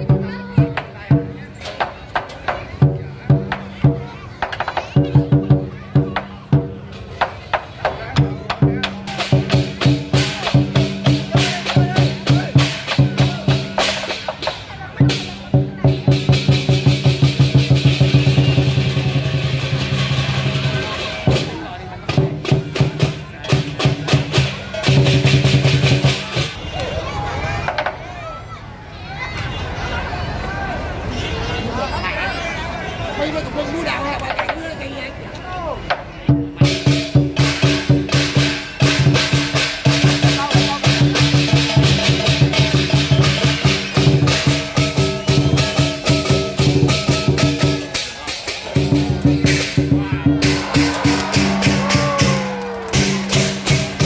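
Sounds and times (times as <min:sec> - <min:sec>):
big drum beating: 0:05.0 - 0:26.6, 0:36.3 - 0:54.0.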